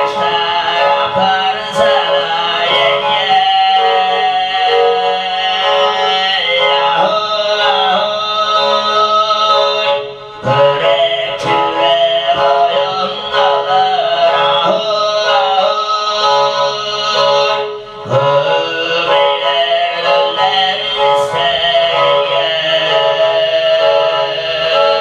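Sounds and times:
bowed fiddle: 0:00.0 - 0:25.0
man throat singing with overtones: 0:00.0 - 0:25.0.

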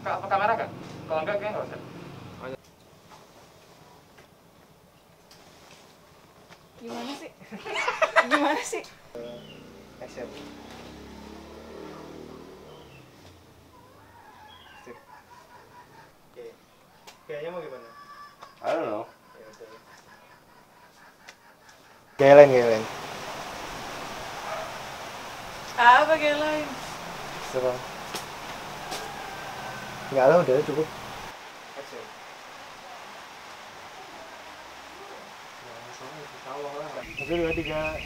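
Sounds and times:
faint wavering animal calls: 0:09.1 - 0:22.8, 0:28.6 - 0:31.3.

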